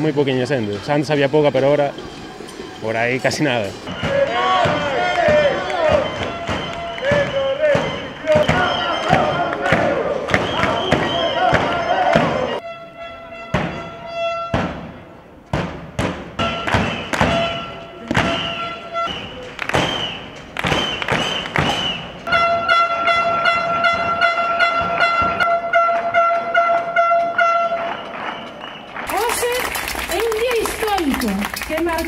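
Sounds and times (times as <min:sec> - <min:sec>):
pitched horn blast: 0:03.5 - 0:15.2, 0:16.4 - 0:19.7, 0:22.2 - 0:28.1
beating and clapping thumps: 0:03.9 - 0:12.4, 0:15.6 - 0:22.3, 0:27.8 - 0:32.0
falling whistle blasts: 0:03.9 - 0:14.6, 0:16.4 - 0:28.9.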